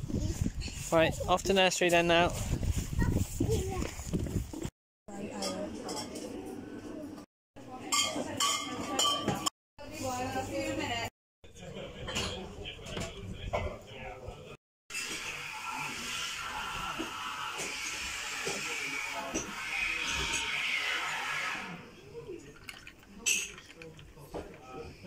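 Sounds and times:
sparkling water pouring and fizzing: 14.9 - 19.0
background chatter: 21.6 - 25.0.

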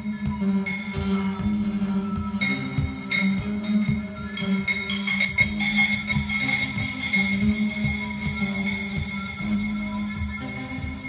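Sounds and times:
synth drone: 0.0 - 11.0.

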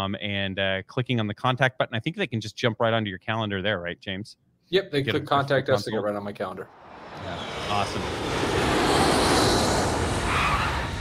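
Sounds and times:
rushing whoosh: 6.7 - 11.0.

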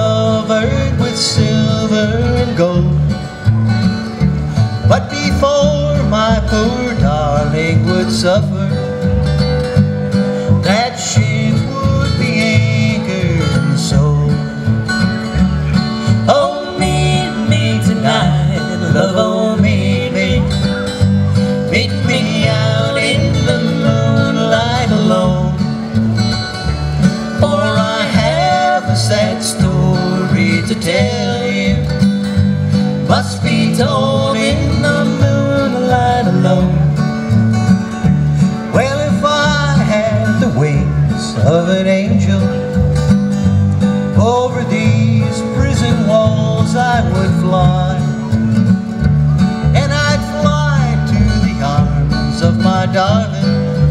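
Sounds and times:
acoustic guitar picking melody: 0.0 - 53.9
upright bass plucking: 0.0 - 53.9.

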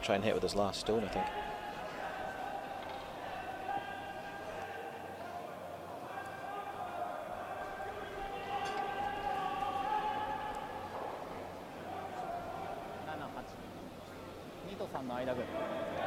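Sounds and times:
faint voices: 0.0 - 16.0.

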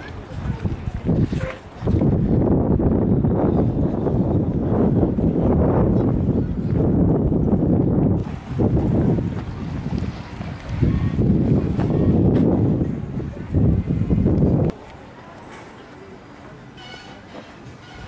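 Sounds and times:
wind buffeting microphone: 0.0 - 14.8.

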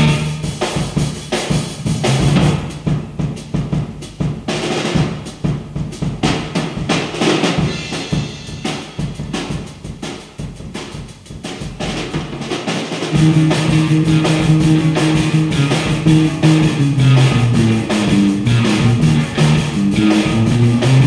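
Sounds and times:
rock drum kit playing: 0.0 - 21.0.

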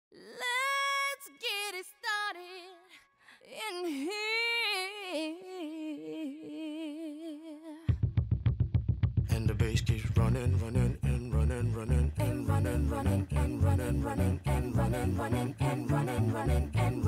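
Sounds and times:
high voice singing: 10.2 - 17.0.

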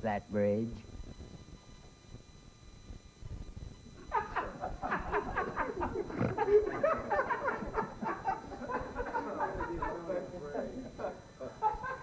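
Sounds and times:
people laughing hard: 4.1 - 12.0.

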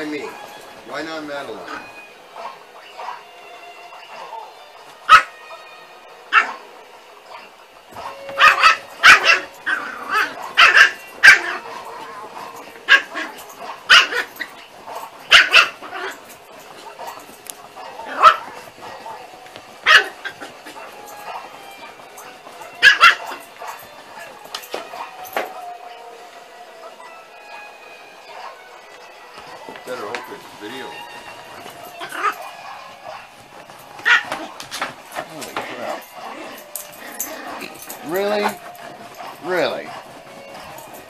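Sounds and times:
dog barking: 1.6 - 3.2, 3.9 - 5.6, 6.3 - 27.0, 28.2 - 28.8, 29.4 - 41.0.

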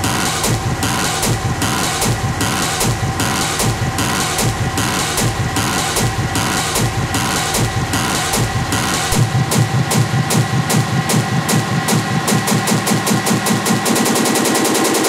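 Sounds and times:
deep bass: 0.0 - 13.9.

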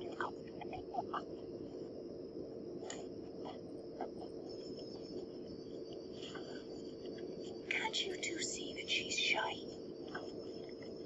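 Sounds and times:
faint hum: 0.0 - 11.0
person whispering: 7.7 - 10.3.

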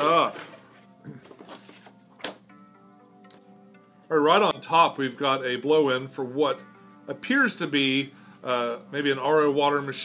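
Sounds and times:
cardboard and paper rustling: 0.0 - 2.4
faint background music: 0.0 - 10.0.

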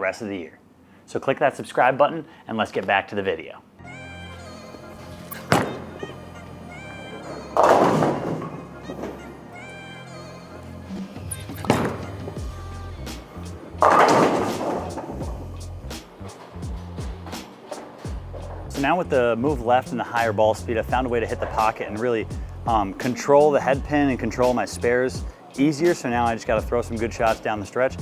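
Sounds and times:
background music: 3.7 - 28.0
bowling pins crashing: 5.3 - 6.0, 6.8 - 9.6, 11.5 - 12.4, 13.7 - 15.5
bowling ball thud on lane: 5.4 - 6.0, 7.5 - 9.2, 11.6 - 12.2, 13.8 - 15.2.

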